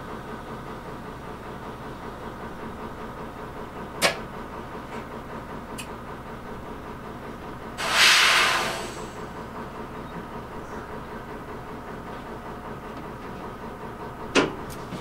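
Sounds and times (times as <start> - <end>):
train running noise: 0.0 - 15.0
air hiss: 7.8 - 9.4.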